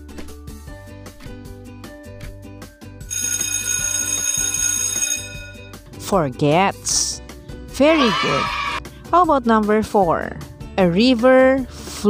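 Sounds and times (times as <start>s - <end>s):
background music with steady beat: 0.0s - 3.1s
alarm clock bell ringing: 3.1s - 5.7s.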